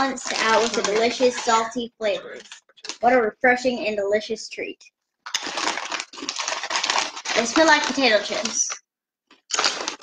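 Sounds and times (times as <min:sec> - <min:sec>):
foil snack bag crinkling: 0:00.0 - 0:03.2, 0:05.2 - 0:10.0.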